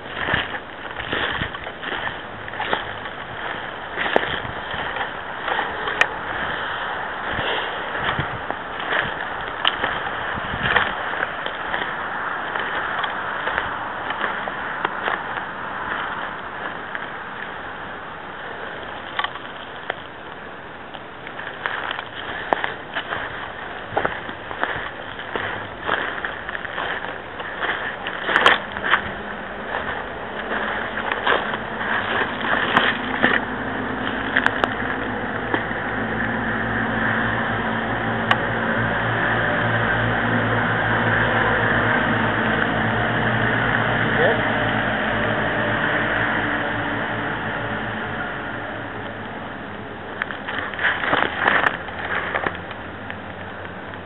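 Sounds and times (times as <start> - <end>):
footsteps crunching through dry grass: 0.0 - 54.0
steady rushing noise: 0.0 - 54.0.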